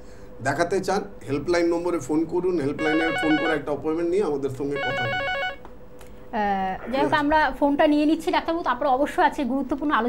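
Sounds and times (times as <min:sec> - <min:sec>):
person speaking: 0:02.7 - 0:03.7, 0:04.8 - 0:05.5
warbling telephone ring: 0:02.8 - 0:03.7, 0:04.8 - 0:05.6.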